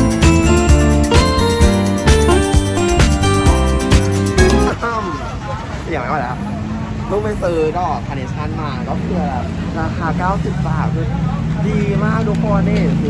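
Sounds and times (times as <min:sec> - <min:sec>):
people talking: 0:04.5 - 0:13.0.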